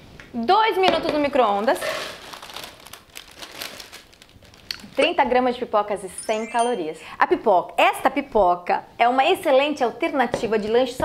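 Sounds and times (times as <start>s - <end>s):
paper bag rustling: 1.5s - 5.3s.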